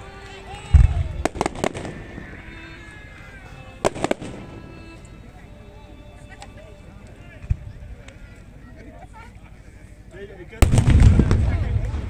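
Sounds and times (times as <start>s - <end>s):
firework cracks: 0.7s - 2.6s, 3.8s - 4.5s, 10.6s - 12.0s
deep firework boom: 10.6s - 12.0s.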